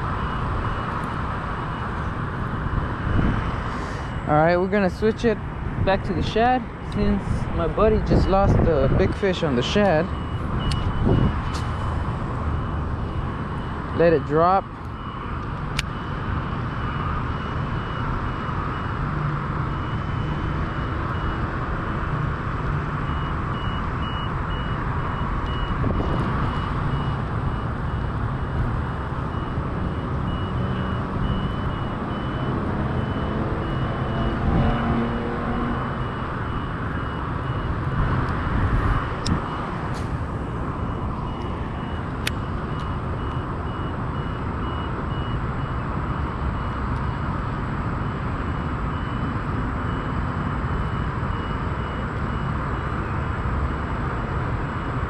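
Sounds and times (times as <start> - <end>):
reversing alarm beeping: 0.0 - 21.6, 23.0 - 54.0
traffic rumble: 0.0 - 55.0
wind on microphone: 2.1 - 4.2, 5.4 - 9.7, 10.3 - 12.3, 25.5 - 29.0, 37.7 - 39.9.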